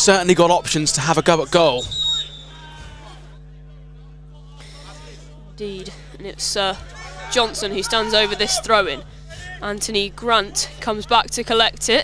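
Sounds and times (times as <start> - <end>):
low electrical hum: 0.0 - 12.0
commentator speaking: 4.6 - 12.0.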